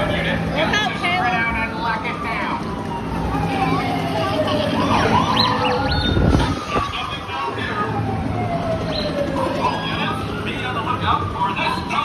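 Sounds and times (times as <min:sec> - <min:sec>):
low rumble of ride vehicle: 0:00.0 - 0:12.0.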